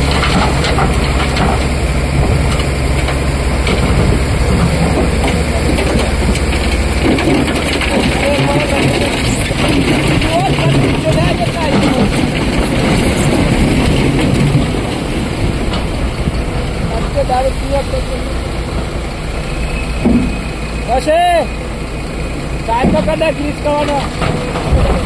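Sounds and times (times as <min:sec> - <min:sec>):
excavator diesel engine running: 0:00.0 - 0:25.0
people's voices: 0:04.5 - 0:06.5, 0:07.9 - 0:13.5, 0:16.8 - 0:18.6, 0:22.6 - 0:25.0.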